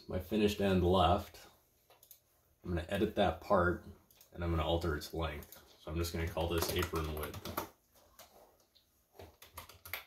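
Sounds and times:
computer keyboard keystrokes: 6.3 - 8.3, 9.2 - 10.0.

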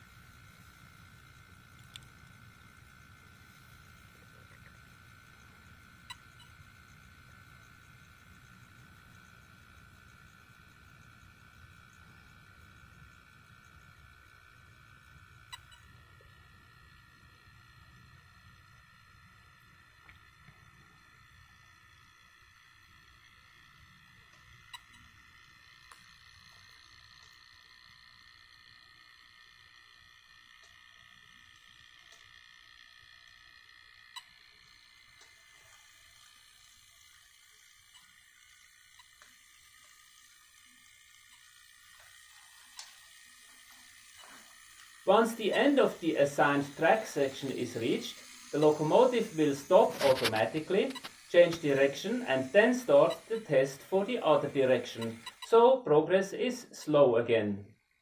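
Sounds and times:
faint high whine: 0.0 - 58.0.

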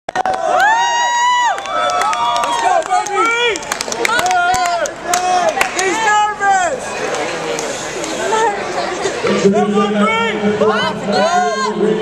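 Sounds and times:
spectators shouting and cheering: 0.1 - 12.0.

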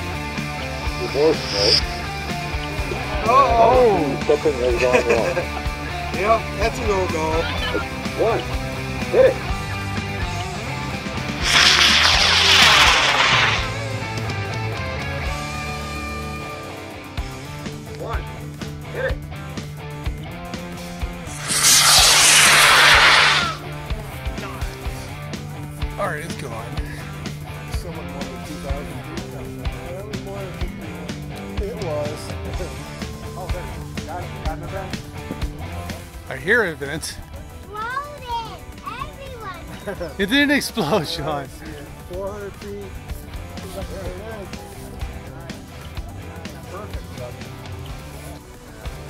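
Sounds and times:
background music: 0.0 - 49.0
rocket motor rushing hiss: 0.6 - 2.5, 11.3 - 13.9, 21.3 - 23.6.

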